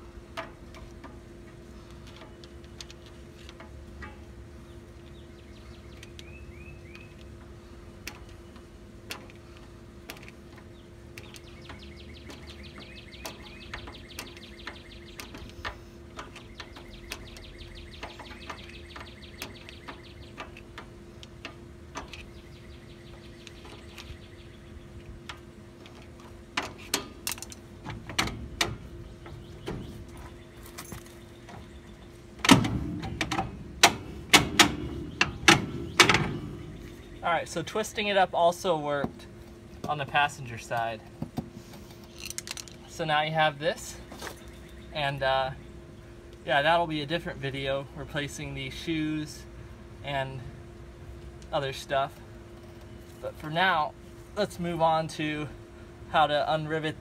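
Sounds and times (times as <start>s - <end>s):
small metallic clicks: 0.4s - 4.3s, 25.0s - 29.4s, 42.0s - 42.8s
metal knocks and clunks: 25.2s - 31.7s, 32.4s - 36.8s.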